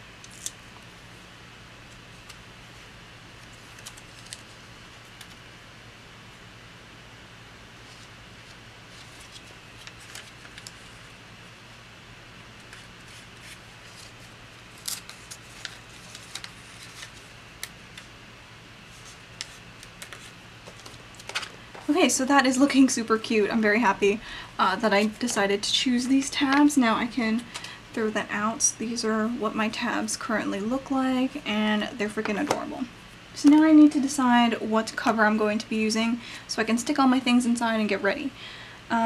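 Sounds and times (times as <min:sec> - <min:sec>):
steady low hum: 0:00.0 - 0:39.0
paper crinkling and clicking: 0:03.4 - 0:05.4, 0:07.9 - 0:11.0, 0:12.6 - 0:18.1, 0:18.9 - 0:21.9.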